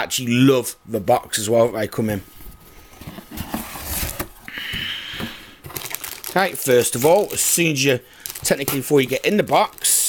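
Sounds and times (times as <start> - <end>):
cardboard scraping rustle: 2.3 - 4.5.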